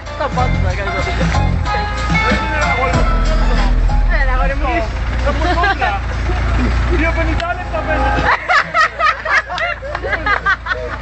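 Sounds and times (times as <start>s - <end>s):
deep subwoofer bass: 0.0s - 8.8s.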